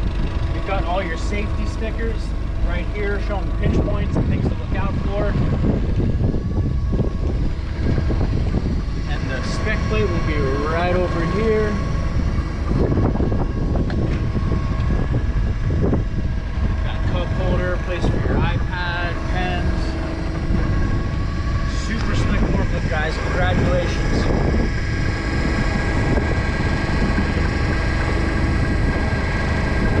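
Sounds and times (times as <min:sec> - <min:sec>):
forklift engine idling: 0:00.0 - 0:30.0
wind buffeting microphone: 0:00.0 - 0:30.0.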